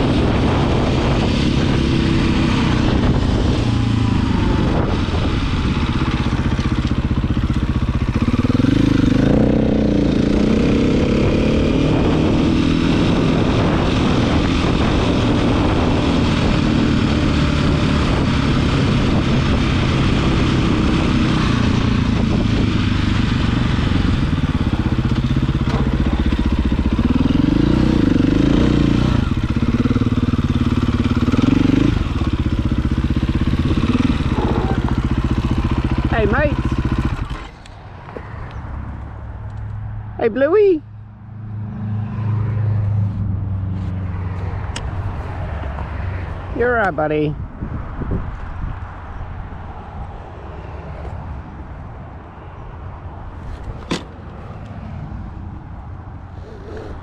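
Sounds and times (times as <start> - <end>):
dirt bike engine revving: 0.0 - 37.6.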